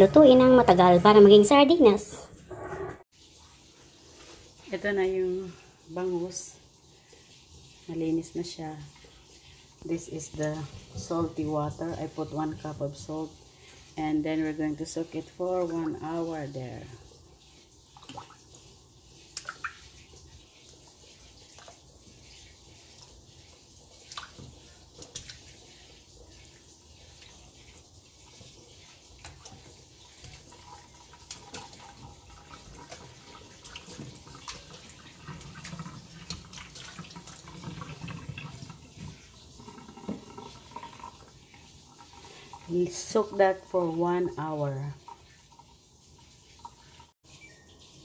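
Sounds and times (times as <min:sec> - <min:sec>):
water splashing and dripping: 0:03.1 - 0:48.0.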